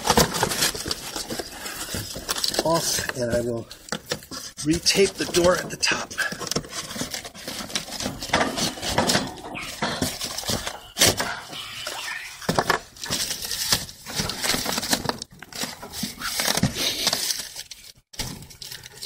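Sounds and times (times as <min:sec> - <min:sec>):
cardboard box rustling: 0:00.0 - 0:11.2, 0:12.5 - 0:19.0.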